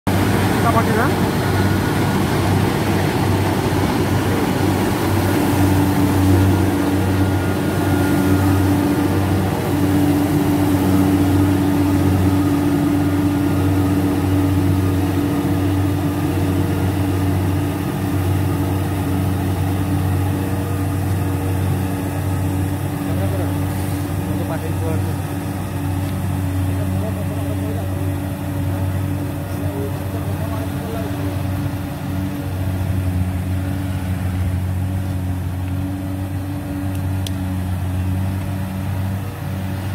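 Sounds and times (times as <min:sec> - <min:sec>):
harvester engine humming: 0:00.1 - 0:39.9
steady higher tone: 0:00.1 - 0:39.9.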